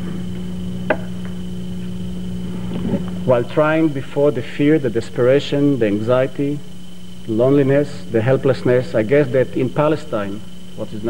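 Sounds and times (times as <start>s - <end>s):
faint high whine: 0.0s - 11.0s
low electrical hum: 0.0s - 11.0s.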